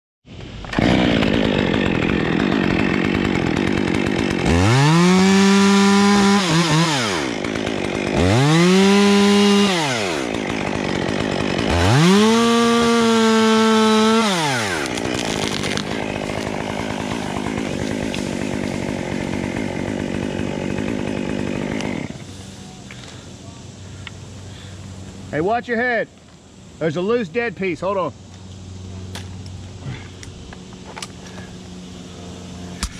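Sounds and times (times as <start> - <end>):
chainsaw revving and idling: 0.6 - 23.2.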